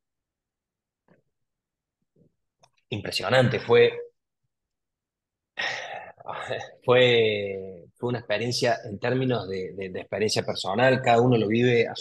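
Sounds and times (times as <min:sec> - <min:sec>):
man speaking: 0:02.9 - 0:04.2, 0:06.2 - 0:12.0.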